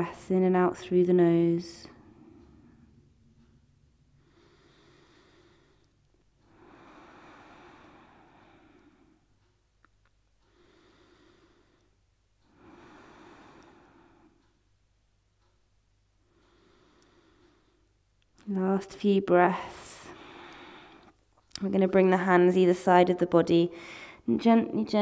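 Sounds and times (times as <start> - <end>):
slow deep breathing through nose: 1.9 - 9.6, 10.4 - 14.6, 16.2 - 18.0, 19.6 - 21.2, 23.8 - 24.2.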